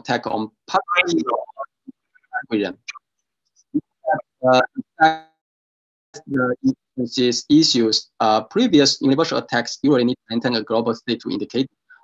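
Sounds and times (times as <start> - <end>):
man speaking over video call: 0.0 - 3.0, 3.8 - 5.4, 6.2 - 12.0.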